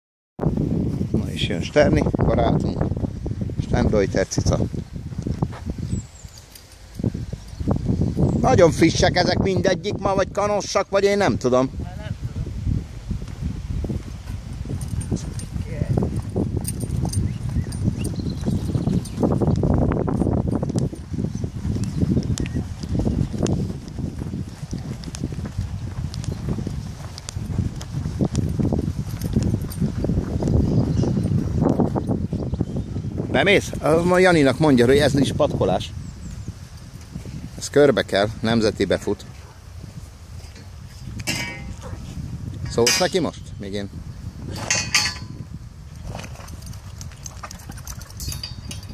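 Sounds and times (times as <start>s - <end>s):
horse hooves walking on sand: 0.4s - 11.2s, 12.8s - 48.9s
person's footsteps: 4.6s - 8.0s, 13.1s - 32.4s
horse rolling in sand: 44.3s - 48.9s.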